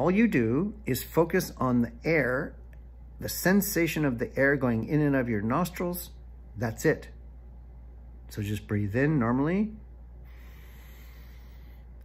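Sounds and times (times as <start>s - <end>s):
man breathing in through nose: 10.2s - 12.0s.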